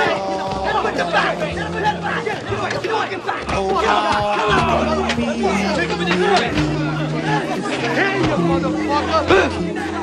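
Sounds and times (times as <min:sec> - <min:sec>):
men yelling and shouting: 0:00.0 - 0:10.0
sustained music notes: 0:00.0 - 0:10.0.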